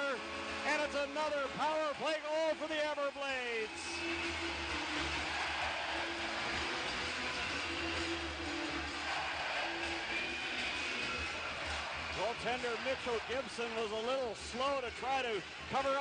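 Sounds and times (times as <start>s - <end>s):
celebration music over loudspeakers: 0.0s - 16.0s
crowd cheering: 0.0s - 16.0s.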